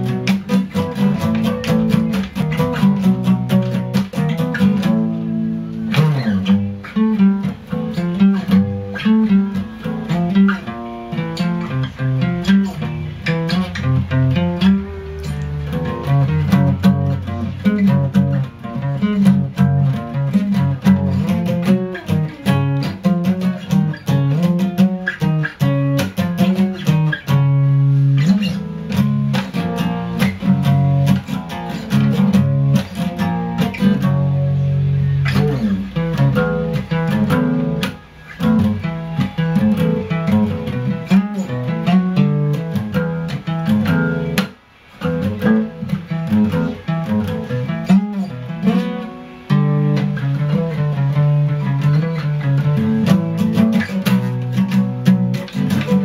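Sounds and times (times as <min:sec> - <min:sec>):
acoustic guitar strummed hard: 0:00.0 - 0:56.0.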